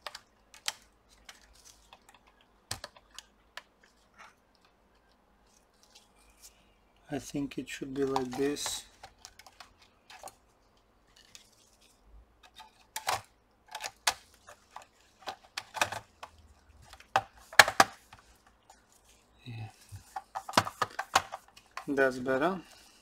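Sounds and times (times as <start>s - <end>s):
plastic clips clicking into place: 0.0s - 3.7s.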